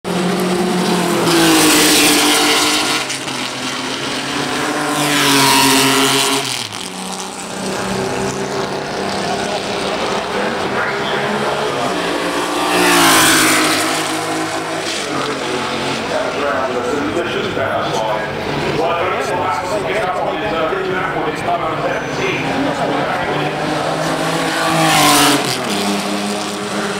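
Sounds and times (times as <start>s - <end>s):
racing car engines passing: 0.1s - 26.9s.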